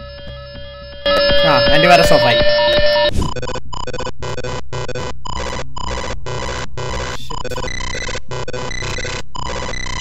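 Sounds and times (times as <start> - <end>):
harsh electronic beeping: 0.0 - 10.0.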